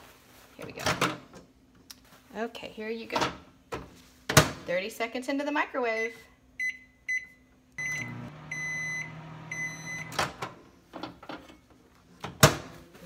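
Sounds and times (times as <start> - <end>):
long microwave beeps: 6.0 - 10.2
microwave keypad beeps: 6.6 - 10.2
microwave humming: 7.7 - 11.2.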